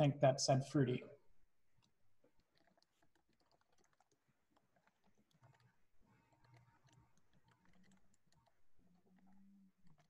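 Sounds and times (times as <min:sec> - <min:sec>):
faint keyboard typing clicks: 0:01.8 - 0:10.0.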